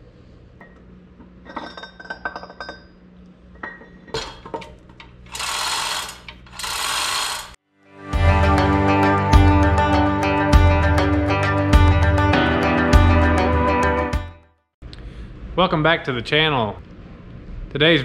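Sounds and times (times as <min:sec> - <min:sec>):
steel gears clinking: 0:05.3 - 0:07.6.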